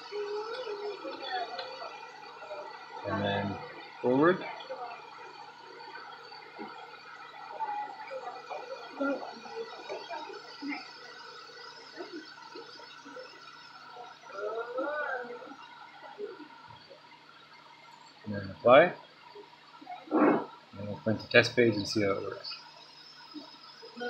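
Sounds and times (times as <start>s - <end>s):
indistinct background voices: 0.0s - 16.9s
steady electrical hum: 0.0s - 24.0s.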